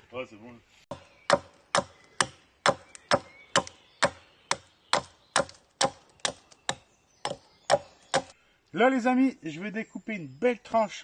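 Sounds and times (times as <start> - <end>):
hatchet chopping wood: 0.9 - 8.3.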